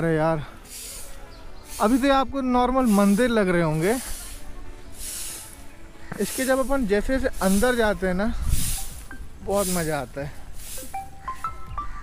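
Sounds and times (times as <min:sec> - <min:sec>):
high hiss: 0:00.6 - 0:11.6.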